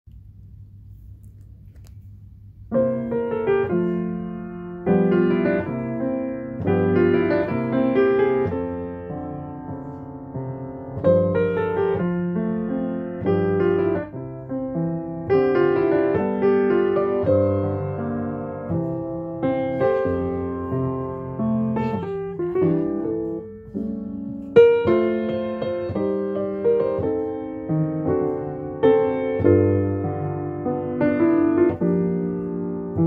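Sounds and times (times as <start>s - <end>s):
grand piano chords: 2.3s - 33.0s.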